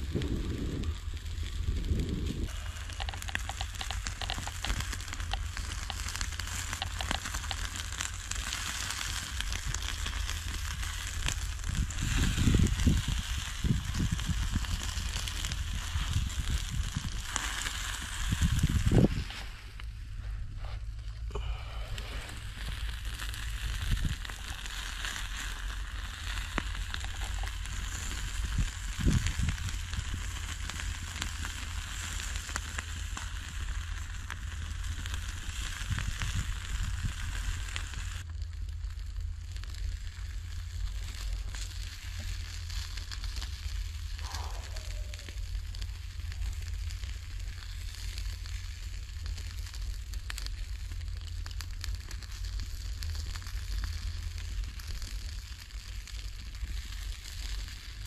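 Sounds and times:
crackles and pops: 0.0s - 58.0s
meat sizzling on a grill: 0.0s - 58.0s.

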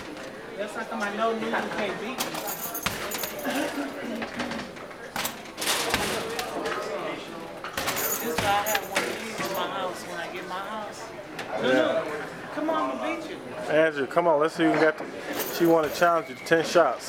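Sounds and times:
voices chattering: 0.0s - 17.0s.

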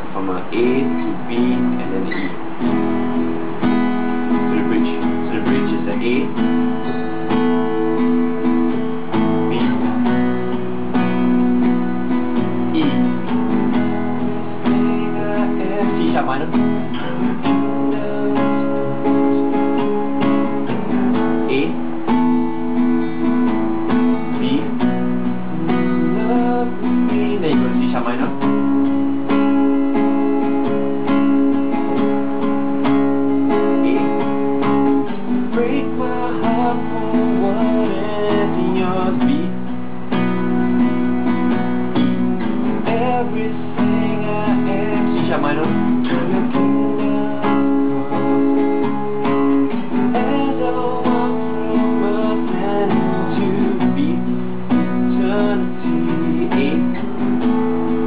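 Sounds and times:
man singing: 0.0s - 3.2s, 4.3s - 7.9s, 9.1s - 10.3s, 12.3s - 22.8s, 23.4s - 39.7s, 42.6s - 58.0s
acoustic guitar strummed: 0.0s - 58.0s.

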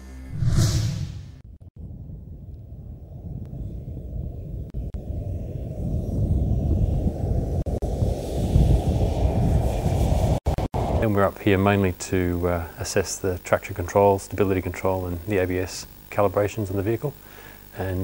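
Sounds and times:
wind on microphone: 1.7s - 11.2s.

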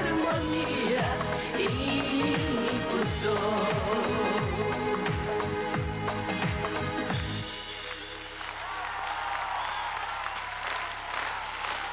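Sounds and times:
audience applauding and cheering: 6.4s - 11.9s.

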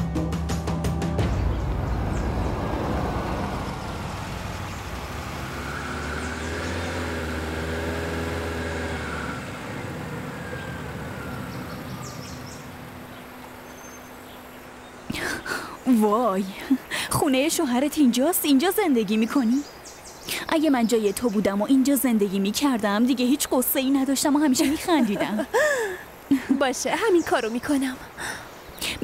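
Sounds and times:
minivan road and engine noise: 0.0s - 29.0s.

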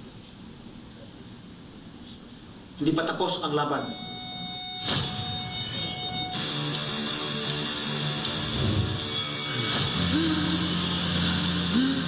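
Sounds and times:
high electronic tones: 2.8s - 12.0s.

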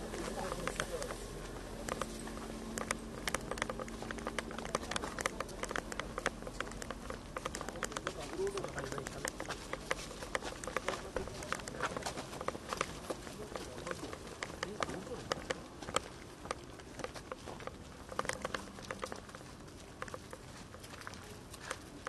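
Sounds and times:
hard-soled footsteps on paving: 0.0s - 22.0s.

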